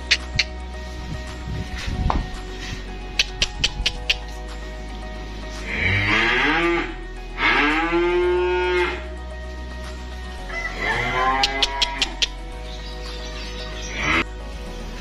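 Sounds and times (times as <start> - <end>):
sharp clicks: 0.0 - 0.6, 3.2 - 4.4
calves mooing: 5.6 - 9.1, 10.7 - 12.3.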